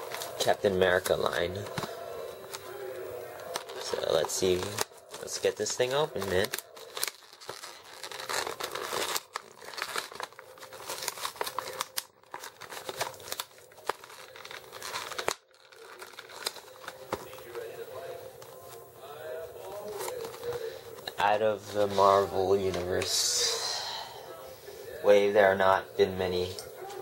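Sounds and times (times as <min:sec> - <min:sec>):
plastic packaging crackling and ripping: 0:00.0 - 0:18.8, 0:19.6 - 0:23.4.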